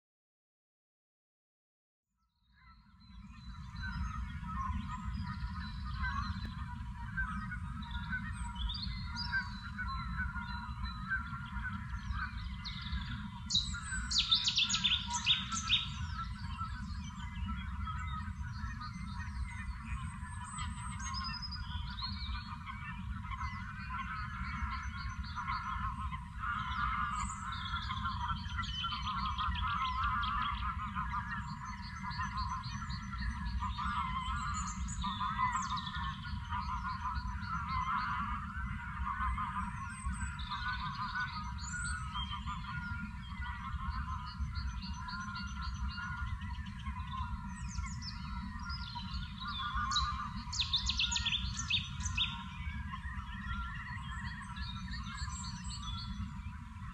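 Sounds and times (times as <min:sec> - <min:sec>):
birds calling and singing: 0:02.6 - 0:56.9.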